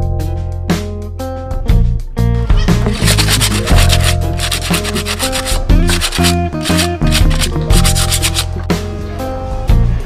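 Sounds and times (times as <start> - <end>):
background music: 0.0 - 10.0
sandpaper rubbing on cement: 2.9 - 8.6.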